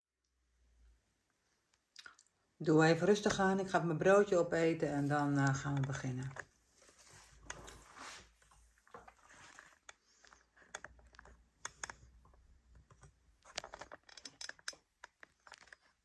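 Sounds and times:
small objects rustling: 4.8 - 16.0.

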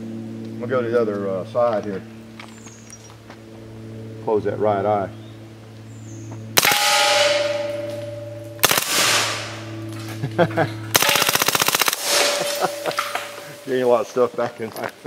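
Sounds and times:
steel targets ringing: 6.6 - 10.1, 10.9 - 14.3.

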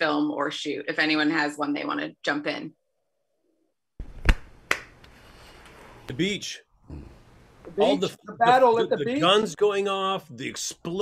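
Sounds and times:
low room noise: 4.0 - 11.0.

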